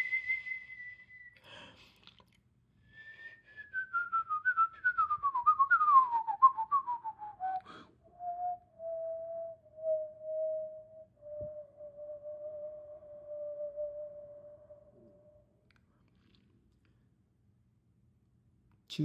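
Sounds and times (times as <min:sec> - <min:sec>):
person whistling a melody: 0:00.0 - 0:01.5, 0:02.9 - 0:15.5.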